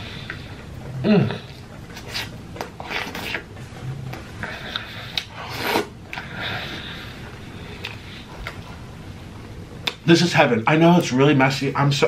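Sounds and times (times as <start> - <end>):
wet chewing and lip-smacking: 4.1 - 6.3.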